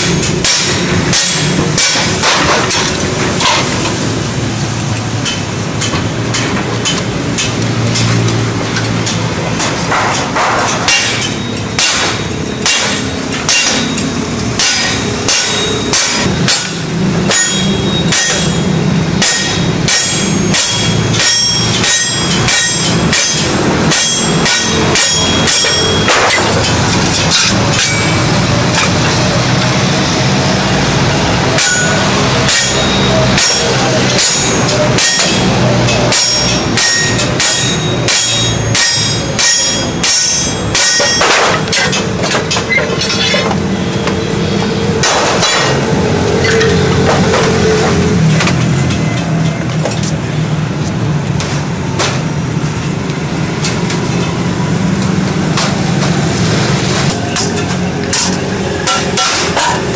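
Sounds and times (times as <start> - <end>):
hammer striking sheet metal: 0.0 - 44.2, 45.0 - 49.0, 56.9 - 59.9.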